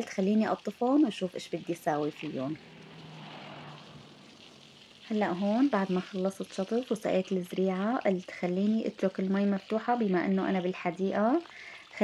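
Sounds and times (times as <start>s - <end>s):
hose water hissing onto concrete: 0.0s - 12.0s.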